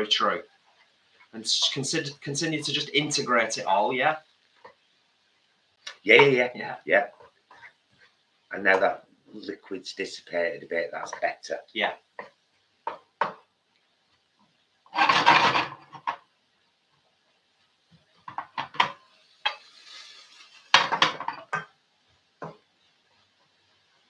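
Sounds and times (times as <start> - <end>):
wooden spoon scraping frying pan: 0.2 - 3.8, 6.1 - 9.0, 14.9 - 16.2, 18.2 - 21.7
spoon knocking on pan: 12.2 - 13.5, 20.8 - 21.7, 22.4 - 22.6.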